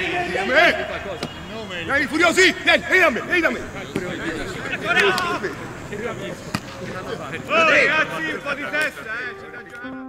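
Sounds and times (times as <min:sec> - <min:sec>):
players shouting: 0:00.0 - 0:09.8.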